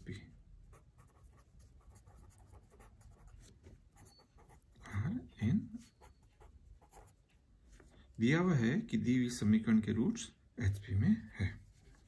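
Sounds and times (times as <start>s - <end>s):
pen scratching on paper: 0.7s - 4.8s, 5.8s - 7.2s.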